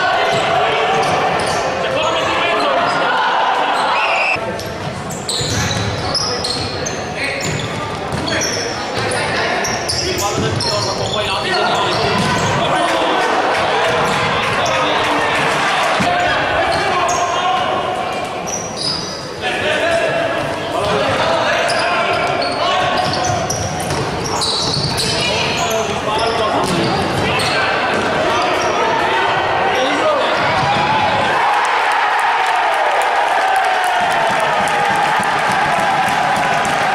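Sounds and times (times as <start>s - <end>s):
players and spectators shouting: 0.0s - 4.4s, 8.3s - 36.9s
ball bouncing on wooden court: 11.9s - 12.6s, 22.9s - 25.4s, 26.6s - 27.2s, 30.4s - 30.9s.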